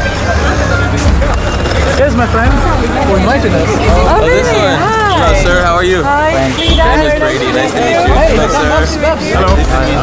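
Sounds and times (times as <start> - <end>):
crowd chatter: 0.0 - 10.0
vehicle engines rumbling: 0.0 - 10.0.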